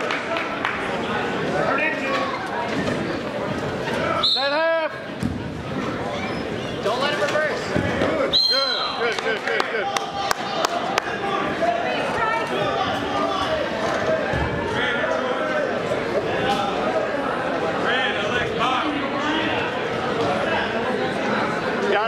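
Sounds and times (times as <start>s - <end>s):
many voices talking and calling out: 0.0s - 22.0s.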